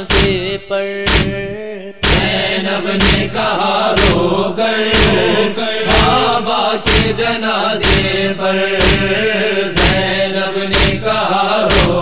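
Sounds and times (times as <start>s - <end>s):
chest-beating percussive beat: 0.0s - 12.0s
man chanting: 0.0s - 12.0s.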